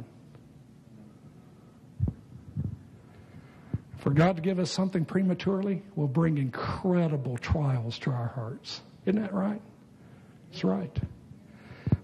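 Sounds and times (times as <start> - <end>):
faint hum: 0.0 - 12.0
microphone handling thumps: 2.0 - 2.9.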